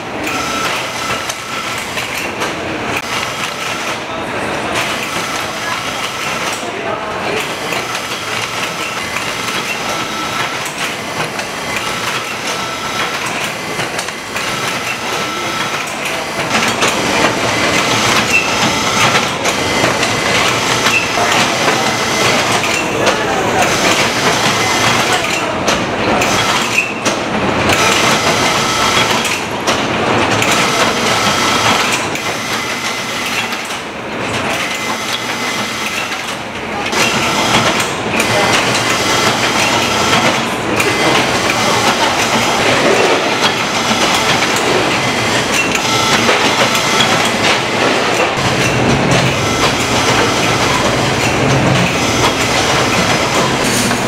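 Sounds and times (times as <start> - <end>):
conveyor belts clattering and whirring: 0.0 - 54.0.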